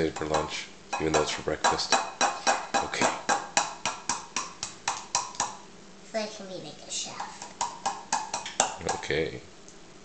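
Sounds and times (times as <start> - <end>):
egg tapping on bowl rim: 0.0 - 5.6, 7.2 - 9.2.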